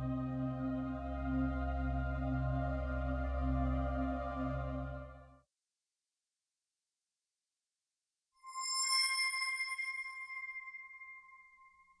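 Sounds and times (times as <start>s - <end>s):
bell-like ping ringing: 8.4s - 11.6s.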